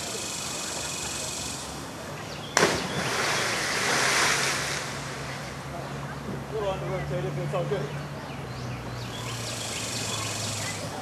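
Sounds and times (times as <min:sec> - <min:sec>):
person splashing into river: 0:02.6 - 0:05.6
churning spraying water: 0:02.6 - 0:06.5.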